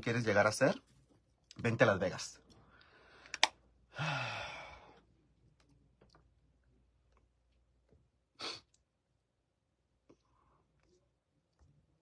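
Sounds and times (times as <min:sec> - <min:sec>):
person sighing: 0:03.9 - 0:05.0.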